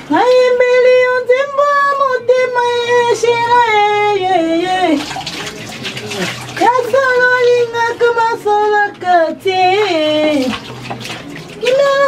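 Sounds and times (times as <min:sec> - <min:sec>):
water splashing: 0:04.7 - 0:12.0.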